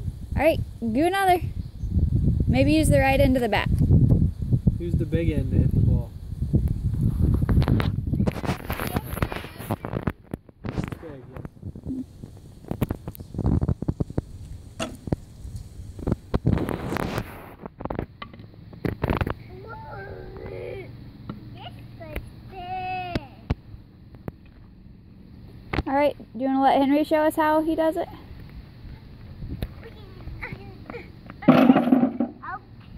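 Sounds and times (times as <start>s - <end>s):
wind on microphone: 0.0s - 18.1s, 28.2s - 30.8s
young child's voice: 8.7s - 10.0s, 19.4s - 23.5s, 29.7s - 32.9s.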